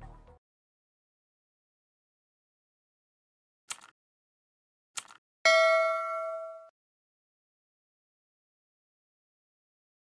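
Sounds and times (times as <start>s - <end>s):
bright bell ding: 5.5s - 6.7s.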